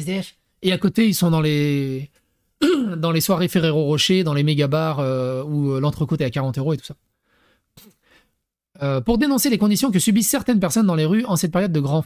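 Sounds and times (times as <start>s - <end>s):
man's hesitant vocal sound: 2.6s - 3.0s.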